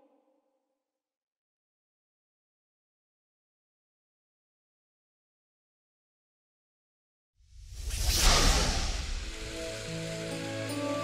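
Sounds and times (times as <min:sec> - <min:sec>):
hissing whoosh: 0:07.5 - 0:10.7
soft music of held notes: 0:09.6 - 0:11.0.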